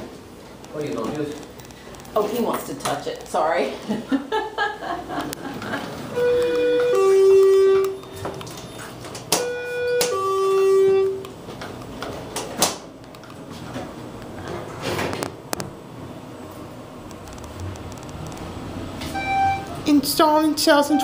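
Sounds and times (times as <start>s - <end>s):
elevator two-tone chime: 6.1s - 8.2s, 9.4s - 11.2s, 19.1s - 19.8s, 20.7s - 21.0s.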